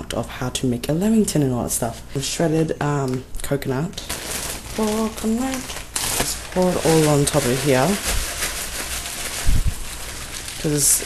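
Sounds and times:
plastic bag rustling: 3.9s - 11.0s.

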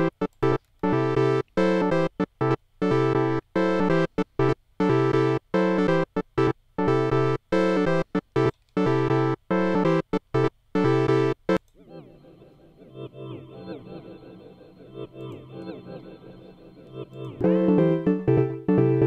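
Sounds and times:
synthesizer chord stabs: 0.0s - 19.0s
soft synthesizer gliding pitches: 11.8s - 19.0s.

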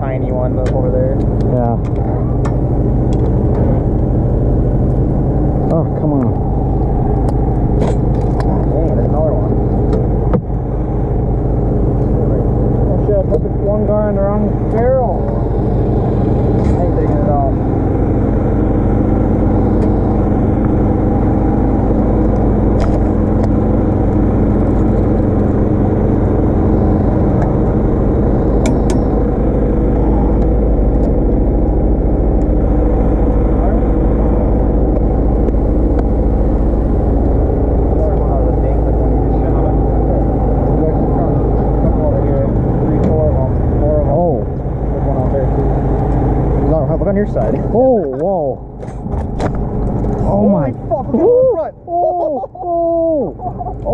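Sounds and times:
small boat engine running: 0.0s - 53.9s.

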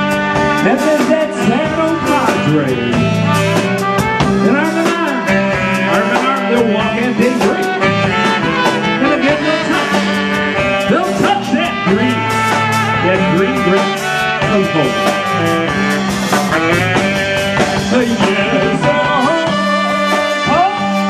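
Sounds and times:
electric bass guitar: 0.0s - 21.0s
keyboard: 0.0s - 21.0s
saxophone: 0.0s - 21.0s
steady beat: 0.0s - 21.0s
man singing into microphone: 9.0s - 10.0s, 17.4s - 21.0s.

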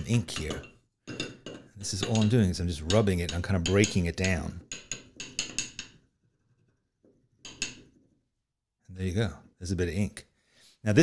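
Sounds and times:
ink stick scraping on glass: 0.1s - 8.2s.

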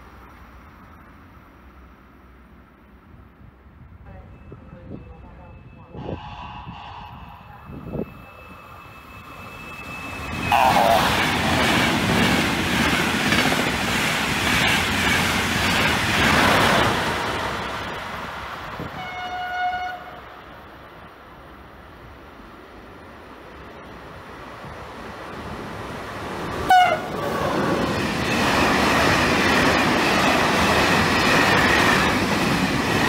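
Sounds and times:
train passing at speed: 0.0s - 33.0s
train horn blast: 6.0s - 7.6s, 10.5s - 11.0s, 18.9s - 20.2s, 26.7s - 27.2s.

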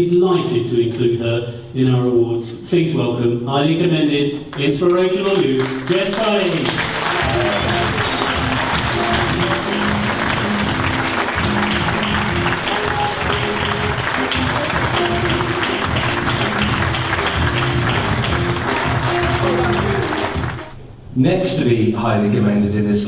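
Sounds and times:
audience applauding: 4.5s - 20.8s
recorded music: 5.2s - 21.1s.

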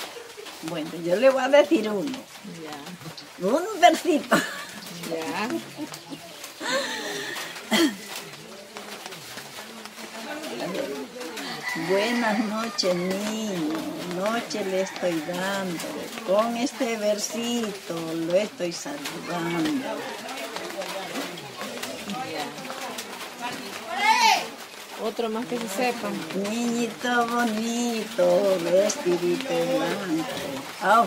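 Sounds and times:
low indistinct voices talking: 0.0s - 31.0s.

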